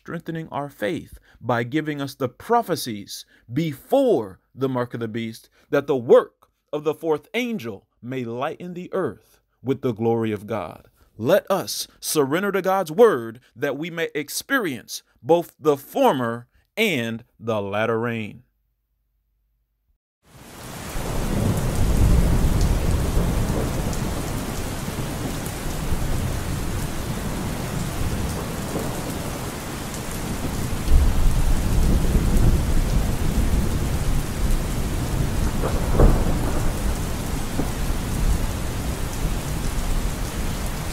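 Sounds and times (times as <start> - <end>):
steady rain: 20.3 - 40.9
thunder rumbling: 20.8 - 40.9
sharp thunderclap: 20.9 - 40.9.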